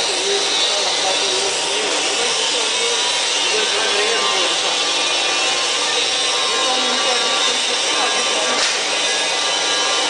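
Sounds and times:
vacuum pump running: 0.0 - 10.0.

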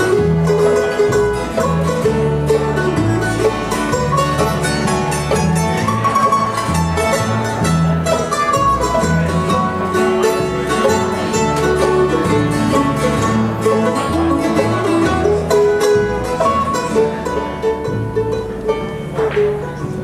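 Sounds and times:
picked banjo: 0.0 - 20.0
plucked upright bass: 0.0 - 20.0
strummed acoustic guitar: 0.0 - 20.0.

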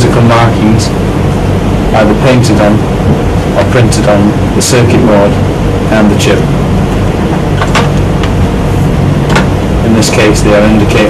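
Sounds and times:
loud low-pitched rumble: 0.0 - 11.0.

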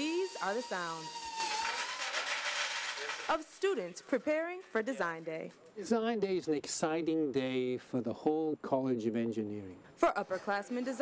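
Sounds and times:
electric motor whine: 0.0 - 3.3
candies poured into metal hopper: 1.4 - 3.4.

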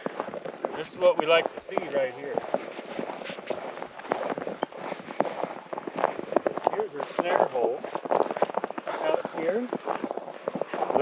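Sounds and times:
footsteps crunching on frozen snow: 0.0 - 11.0.

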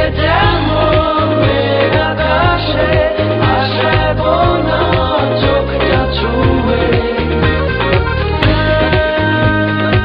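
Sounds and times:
background music with steady beat: 0.0 - 10.0.

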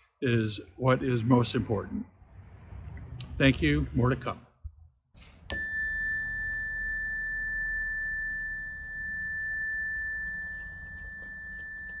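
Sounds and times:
pure high ringing tone: 5.5 - 12.0.

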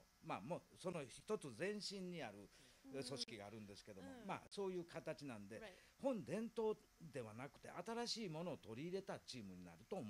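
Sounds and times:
man talking: 0.2 - 10.0.

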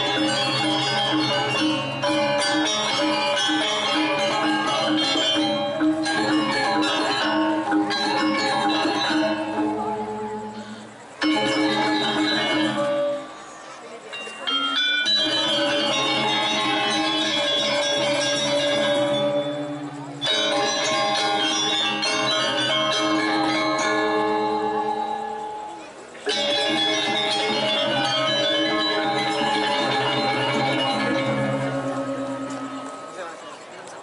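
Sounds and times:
gamelan ensemble playing: 0.0 - 34.0.

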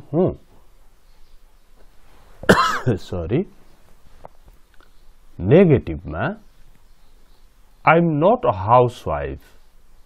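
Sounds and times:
man coughing loudly: 2.4 - 3.0.

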